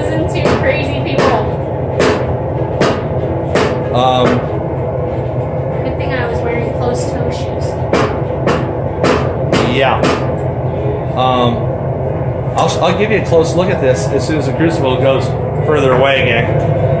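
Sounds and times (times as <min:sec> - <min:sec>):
workshop machine hum: 0:00.0 - 0:17.0.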